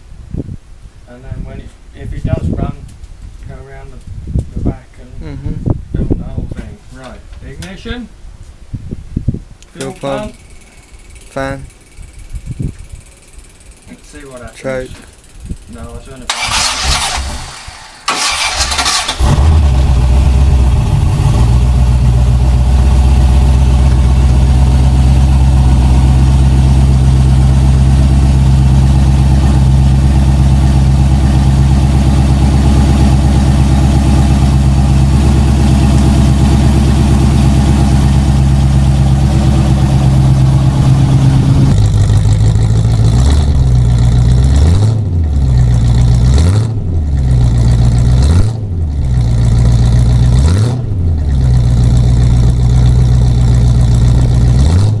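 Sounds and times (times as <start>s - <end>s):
car engine starting and revving: 16.3s - 55.0s.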